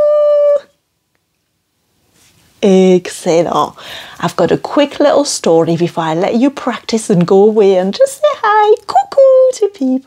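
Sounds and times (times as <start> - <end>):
woman singing a long note: 0.0 - 0.8.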